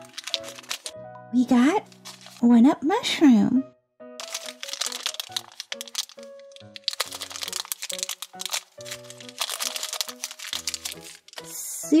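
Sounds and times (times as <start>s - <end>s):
plastic bag crinkling: 0.0s - 1.0s, 1.8s - 2.5s, 4.2s - 11.5s
light bouncy background tune: 0.0s - 12.0s.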